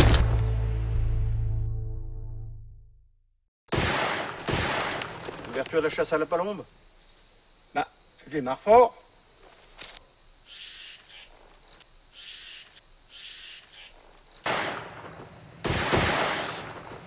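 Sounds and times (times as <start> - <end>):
distant gunshots echoing: 3.7 - 5.6, 14.4 - 17.0.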